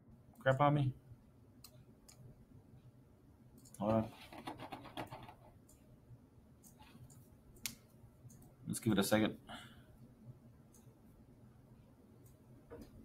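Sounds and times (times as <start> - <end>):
computer mouse clicks: 1.6 - 2.3, 6.6 - 8.5
person speaking: 3.7 - 4.7.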